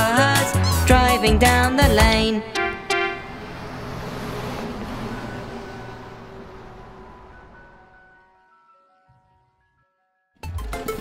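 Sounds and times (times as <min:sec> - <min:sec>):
cartoon bus engine rushing: 0:00.0 - 0:08.8, 0:10.4 - 0:11.0.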